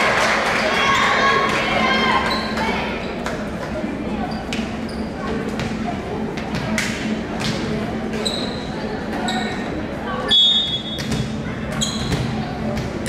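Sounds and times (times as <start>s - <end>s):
voices: 0.0s - 13.0s
shoe squeaks: 2.2s - 3.2s, 4.3s - 5.3s, 8.2s - 9.7s, 10.3s - 12.3s.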